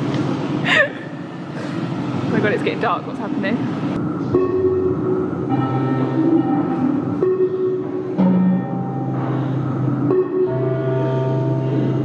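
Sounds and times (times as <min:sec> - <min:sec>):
sustained chord over loudspeaker: 0:04.3 - 0:12.0.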